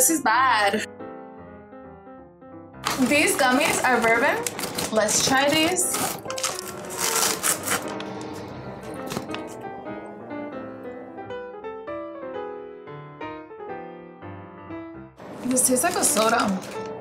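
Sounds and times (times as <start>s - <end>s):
background music melody: 0.0s - 17.0s
snack packet crinkling and tearing: 2.8s - 9.6s, 15.8s - 17.0s.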